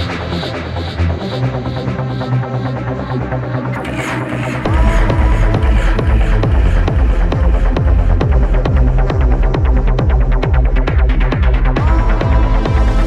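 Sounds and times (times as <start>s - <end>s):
techno track: 0.0s - 13.0s.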